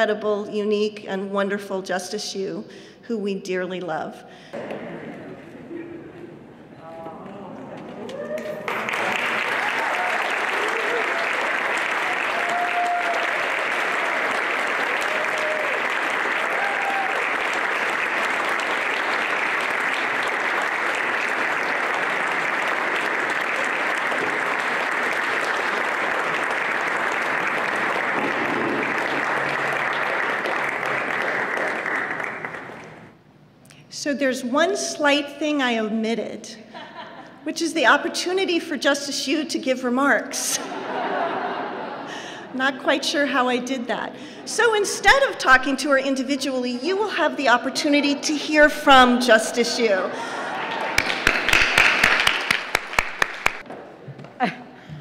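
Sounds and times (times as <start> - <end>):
audience applauding: 7.9 - 33.2, 50.3 - 53.7.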